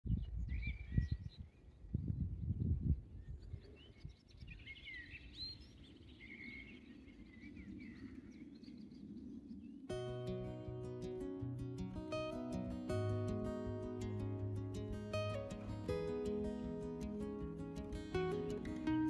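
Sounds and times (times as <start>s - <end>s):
wind buffeting microphone: 0.0s - 11.2s
songbirds singing: 0.1s - 2.5s, 3.1s - 19.0s.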